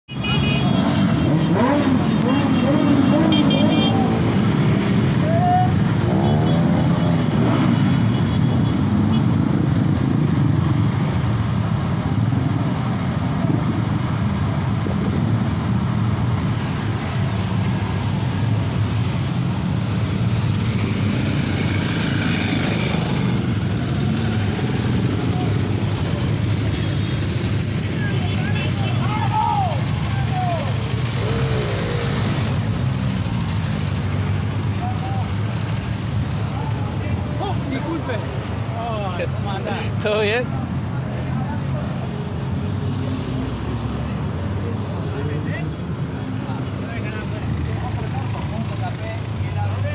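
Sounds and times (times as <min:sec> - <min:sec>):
motorcycle engines rumbling: 0:00.1 - 0:49.9.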